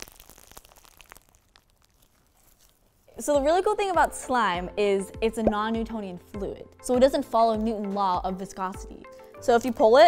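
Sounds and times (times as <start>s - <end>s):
slime squishing with crackles: 0.0s - 3.8s.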